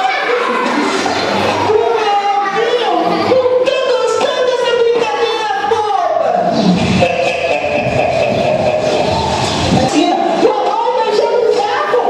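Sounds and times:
noisy soundtrack with held tone: 0.0s - 12.0s.

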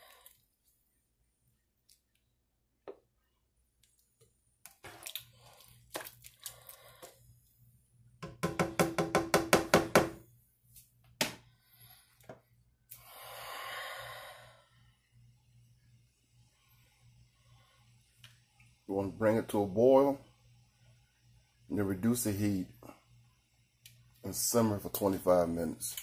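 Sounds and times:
spoon stirring in a skillet: 3.8s - 7.3s
spoon knocking against pan: 8.2s - 10.2s.

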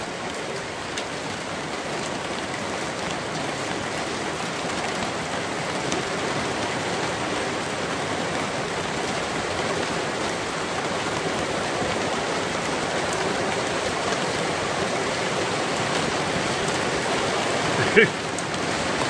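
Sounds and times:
heavy rain pouring: 0.0s - 19.0s.

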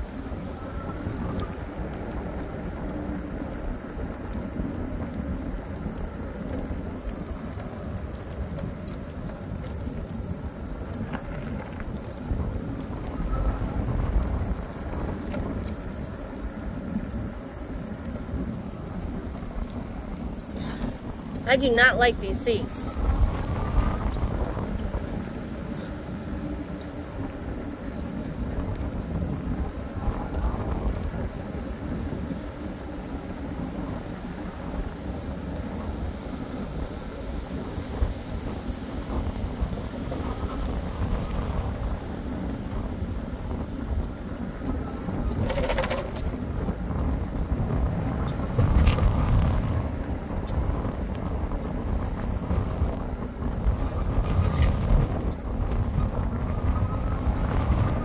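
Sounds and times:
road rumble from bike: 0.0s - 58.0s
wind buffeting microphone: 0.0s - 58.0s.

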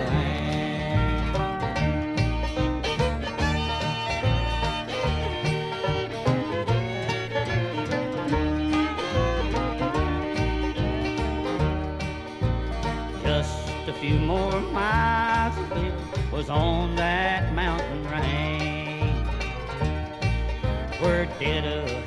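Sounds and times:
bluegrass band playing instrumental: 0.0s - 22.0s.

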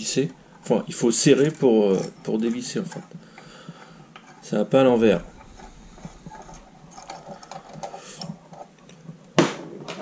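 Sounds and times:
light ticking and scraping of nut: 0.0s - 9.2s.

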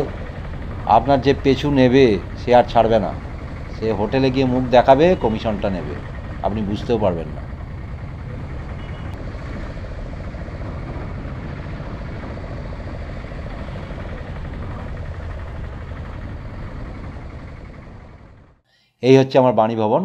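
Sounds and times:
road and vehicle noise: 0.0s - 18.6s.

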